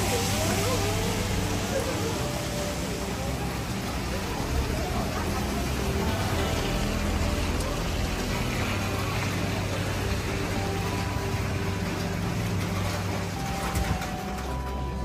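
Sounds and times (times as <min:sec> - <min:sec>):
background music: 0:00.0 - 0:15.0
city street noise: 0:00.0 - 0:15.0.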